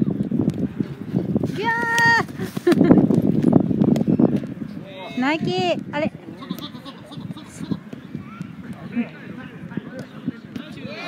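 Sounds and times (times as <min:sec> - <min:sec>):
players shouting: 0:04.8 - 0:11.0.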